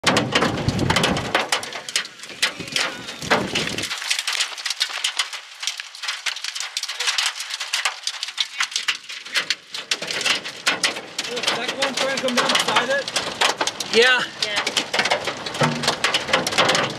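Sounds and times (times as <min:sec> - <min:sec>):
wind rumble on microphone: 0:00.0 - 0:04.0
raindrops on hard surface: 0:00.0 - 0:16.9.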